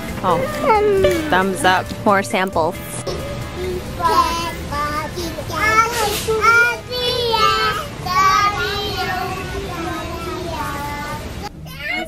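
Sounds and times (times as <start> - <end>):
young child singing: 3.2 - 12.0.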